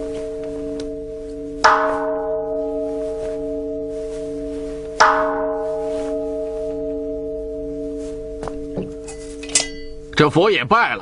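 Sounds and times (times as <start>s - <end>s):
bowl bell strike: 0.0s - 10.2s
bowl bell ringing: 0.0s - 10.3s.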